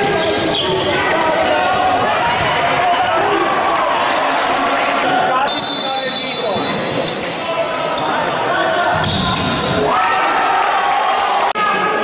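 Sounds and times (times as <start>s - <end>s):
players shouting: 0.0s - 12.0s
referee's whistle: 5.4s - 7.0s.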